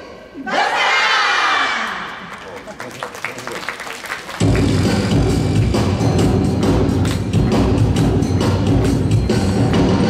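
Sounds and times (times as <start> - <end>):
group shouting in unison: 0.4 - 2.0.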